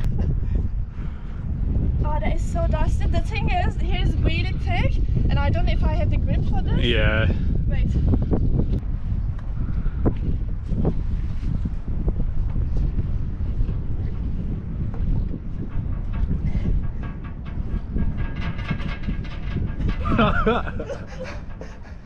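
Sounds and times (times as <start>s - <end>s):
steady low rumble: 0.0s - 22.0s
wind buffeting microphone: 0.0s - 22.0s.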